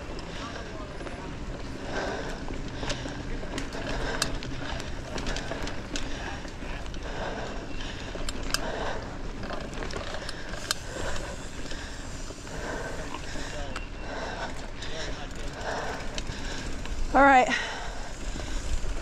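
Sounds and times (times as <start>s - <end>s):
bike rattling over rough ground: 0.0s - 19.0s.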